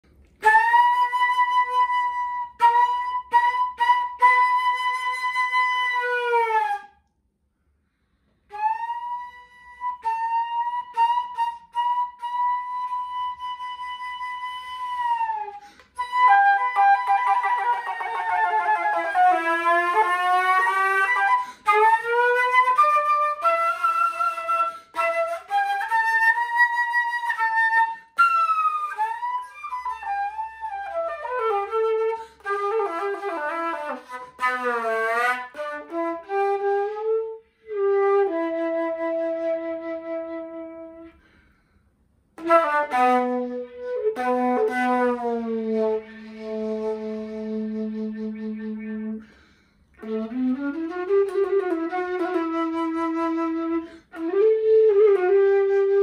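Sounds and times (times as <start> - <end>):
solo flute playing blues: 0.1 - 7.2, 7.9 - 41.7, 42.4 - 56.0.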